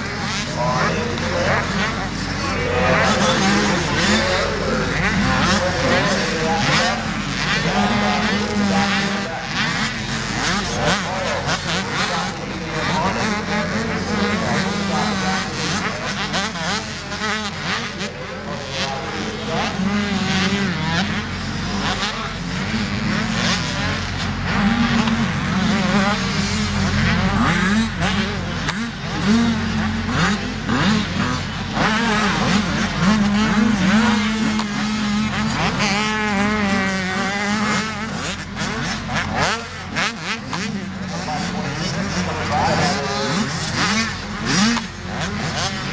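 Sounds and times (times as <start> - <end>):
motocross bike engines revving: 0.0 - 45.9.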